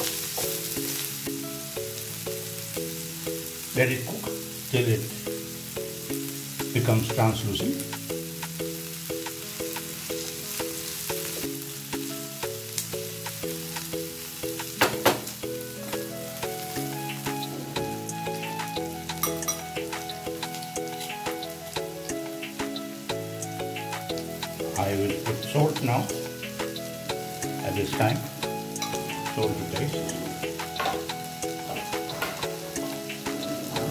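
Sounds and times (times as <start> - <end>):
background music: 0.0 - 33.9
onions sizzling in a pan: 0.0 - 33.9.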